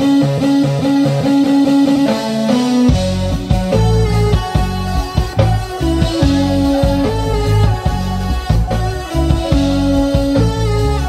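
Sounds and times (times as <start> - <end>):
guitar riff: 0.0 - 11.0
heavy bass: 2.0 - 11.0.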